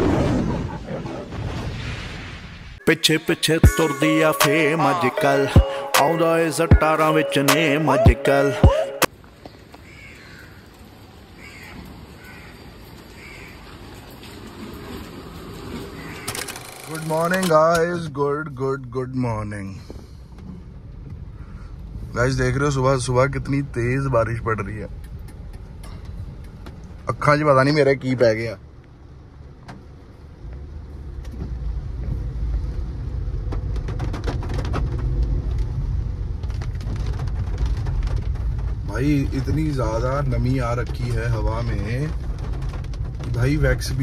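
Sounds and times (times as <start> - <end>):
man speaking: 16.8 - 19.8, 38.9 - 42.2
car rumble inside cabin: 29.0 - 44.0
steady rain falling: 35.2 - 44.0.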